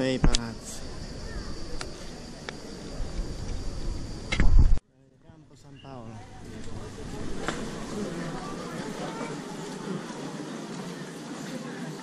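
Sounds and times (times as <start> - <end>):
murmur of pedestrian square: 0.0 - 12.0
people talking indistinctly: 5.0 - 12.0.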